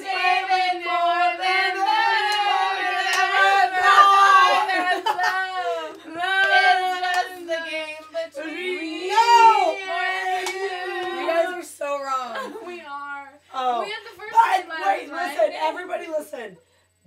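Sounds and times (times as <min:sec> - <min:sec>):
women singing unaccompanied: 0:00.0 - 0:15.8.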